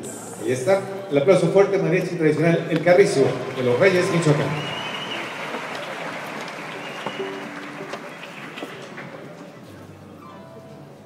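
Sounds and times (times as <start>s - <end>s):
audience applauding: 2.8s - 9.5s.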